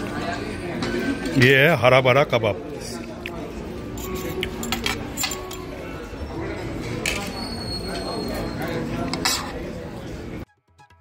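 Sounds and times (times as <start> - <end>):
murmur of diners' voices: 0.0 - 10.5
cutlery and crockery clinking: 3.8 - 9.8.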